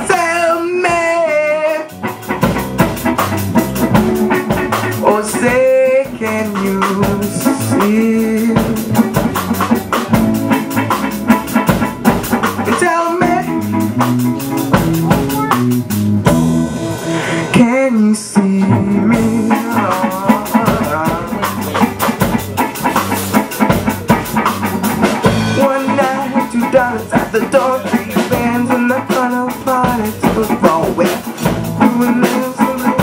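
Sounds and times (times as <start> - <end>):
bass guitar: 0.0 - 33.0
drum kit and cymbals: 0.0 - 33.0
electric guitar: 0.0 - 33.0.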